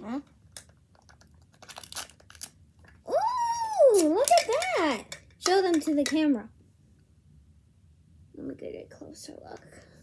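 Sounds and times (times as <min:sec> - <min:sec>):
plastic wrapping crinkling: 0:00.9 - 0:03.0.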